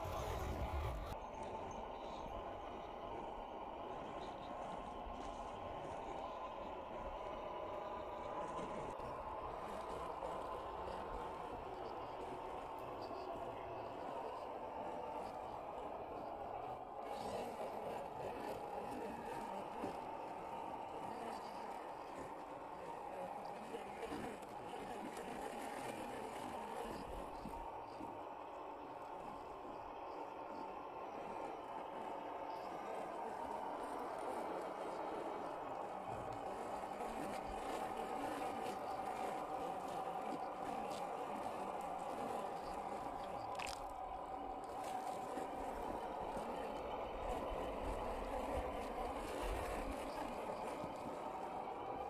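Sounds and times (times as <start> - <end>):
toy car electric motor whirring: 3.8 - 52.0.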